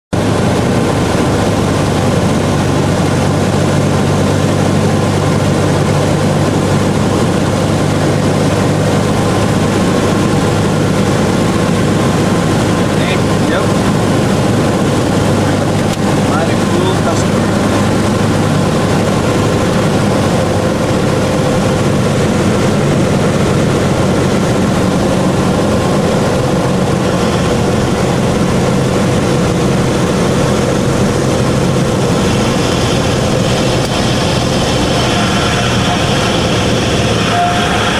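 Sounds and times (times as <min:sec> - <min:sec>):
light aircraft engine drone: 0:00.1 - 0:37.9.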